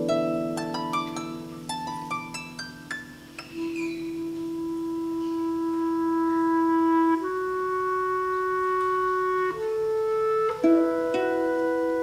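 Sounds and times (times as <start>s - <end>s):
harp plucked notes: 0.0s - 5.6s, 10.5s - 12.0s
clarinet playing slow melody: 3.2s - 12.0s.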